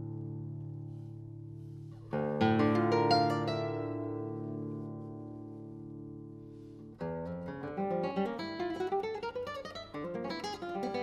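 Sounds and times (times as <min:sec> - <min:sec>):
classical guitar playing: 0:00.0 - 0:11.0.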